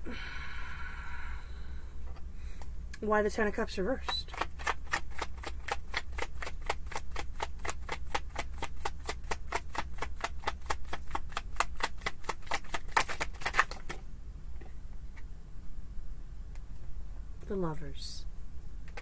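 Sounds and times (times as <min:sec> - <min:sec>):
cards being shuffled: 0:04.2 - 0:14.0.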